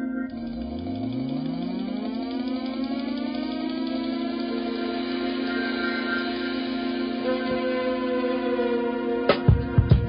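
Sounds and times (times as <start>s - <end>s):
ambient music drone: 0.0s - 10.0s
car accelerating whine: 0.3s - 9.4s.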